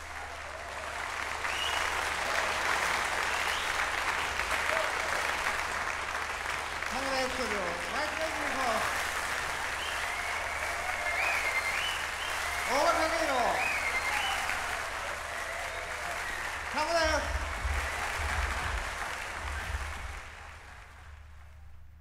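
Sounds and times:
people whooping: 0.0 - 3.8, 9.7 - 16.6
audience applauding: 0.0 - 21.9.

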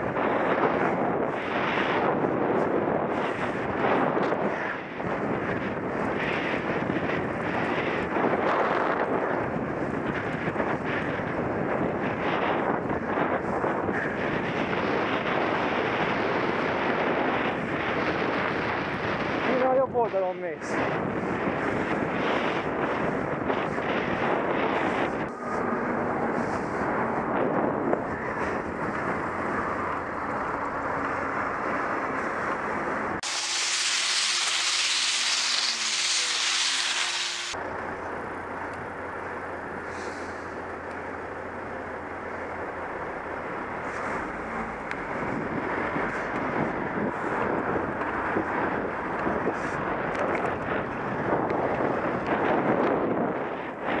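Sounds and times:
wind buffeting microphone: 0.0 - 54.0
street traffic: 20.6 - 52.5
thin high hiss: 33.2 - 37.6.

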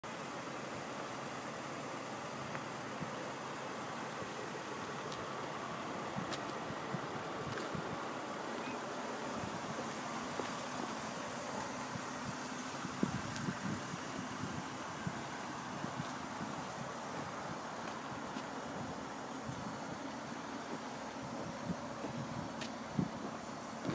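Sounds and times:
car engine idling: 0.0 - 23.9
outdoor air noise: 0.0 - 23.9.

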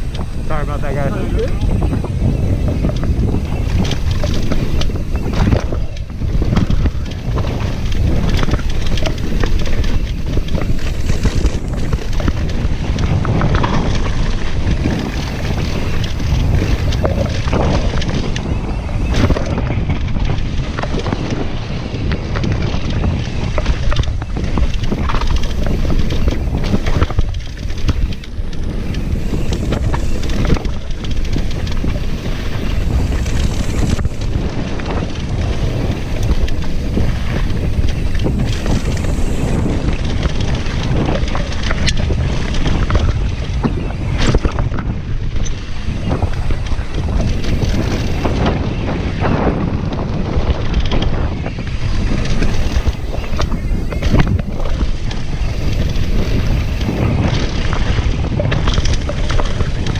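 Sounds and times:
bike clattering over bumps: 0.0 - 59.9
bike tyre rumble on dirt: 0.0 - 59.9
wind buffeting microphone: 0.0 - 59.9.

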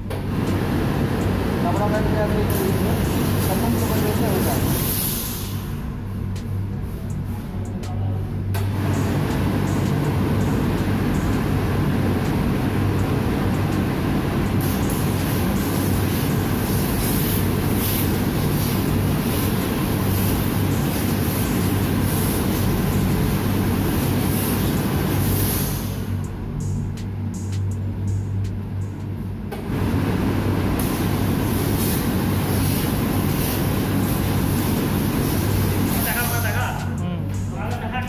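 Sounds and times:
loud steady rushing noise: 0.0 - 38.0
laundry machinery rumbling: 5.6 - 38.0.

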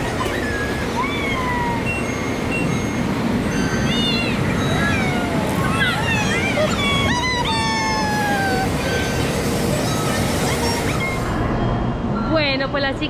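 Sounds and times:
train rumbling into platform: 0.0 - 13.0
high-pitched voices calling out: 0.1 - 2.2, 3.6 - 11.3.

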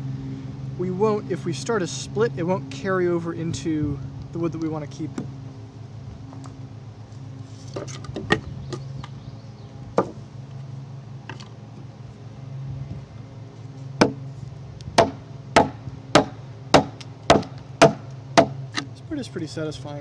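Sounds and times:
axe chopping timber: 10.0 - 10.2, 14.0 - 14.2, 15.0 - 18.9.

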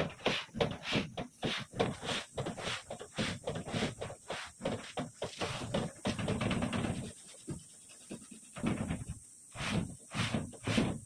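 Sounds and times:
cloth rag swishing on metal: 9.5 - 11.0.

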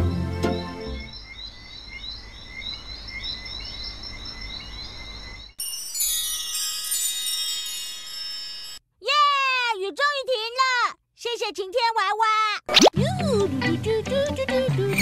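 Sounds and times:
shimmering chime sparkle: 5.6 - 8.8.

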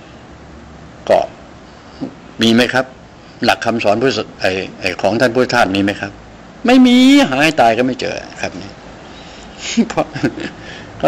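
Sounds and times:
low room noise: 0.0 - 11.0
man speaking: 1.0 - 1.4, 2.0 - 8.8, 9.6 - 10.3.

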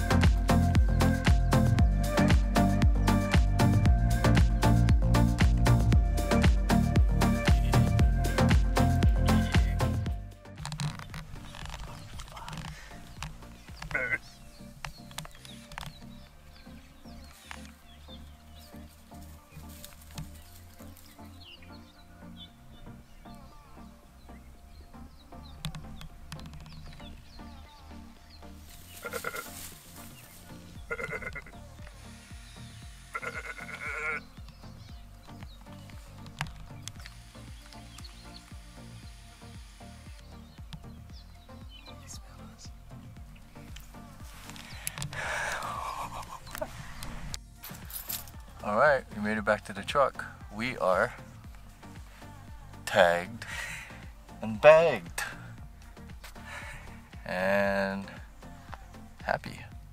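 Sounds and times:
background music: 0.0 - 59.9
sheep bleating: 13.9 - 14.4, 29.0 - 29.6, 30.9 - 31.7, 33.1 - 34.3.

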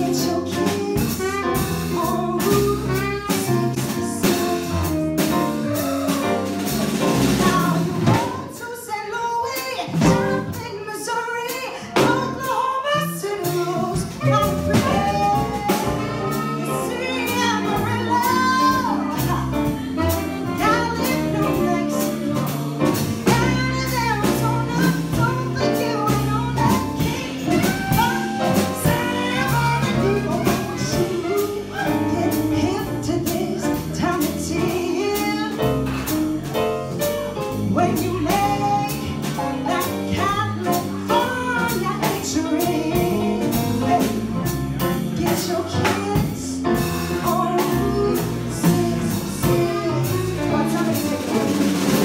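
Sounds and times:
upright bass: 0.0 - 8.6, 12.0 - 52.0
drum kit with cymbals: 0.0 - 52.0
woman singing jazz: 0.0 - 52.0.

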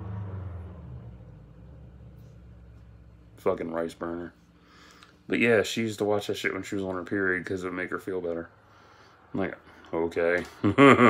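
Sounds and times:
passing vehicle engine rumble: 0.0 - 4.2.

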